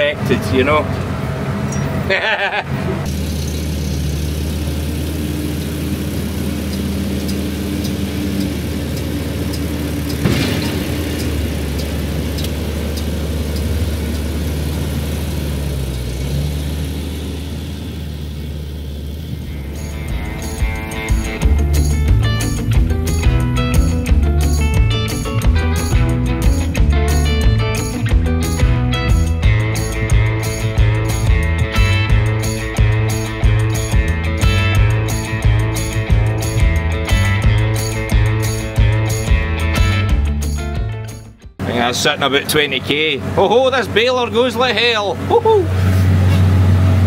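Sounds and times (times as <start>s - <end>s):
vehicle engine droning: 0.0s - 47.0s
music with a beat: 19.8s - 41.5s.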